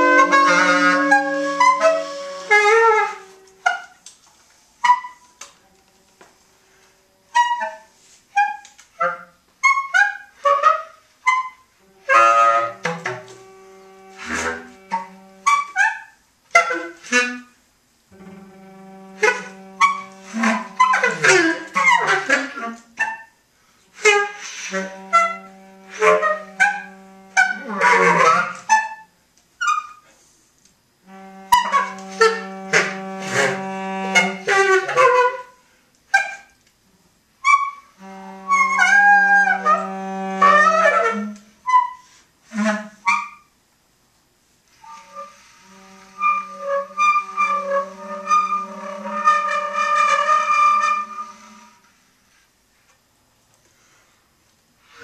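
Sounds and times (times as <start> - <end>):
tenor saxophone: 0.0 - 4.1, 4.8 - 23.3, 23.9 - 30.1, 31.0 - 36.6, 37.4 - 43.5, 44.7 - 52.0
bass clarinet: 0.0 - 4.2, 4.8 - 30.2, 31.0 - 36.6, 37.4 - 43.5, 44.7 - 52.0
cello: 0.0 - 4.2, 4.8 - 30.2, 30.9 - 36.6, 37.4 - 43.5, 44.7 - 52.5, 54.8 - 55.0.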